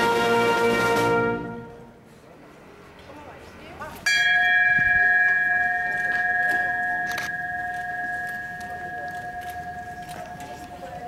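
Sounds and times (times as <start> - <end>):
large bell ringing: 4.0 - 11.0.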